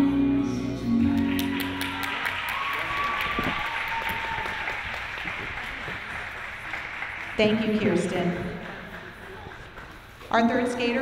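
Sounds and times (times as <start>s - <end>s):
audience applause: 1.0s - 10.3s.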